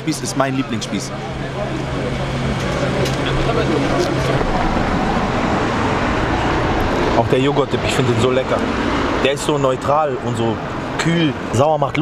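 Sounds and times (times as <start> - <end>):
city street traffic: 0.0 - 12.0
people's voices: 0.0 - 12.0.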